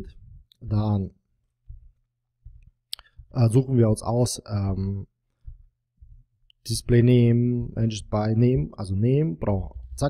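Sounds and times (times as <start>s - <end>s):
soft low thumps: 1.6s - 3.4s, 5.4s - 6.3s.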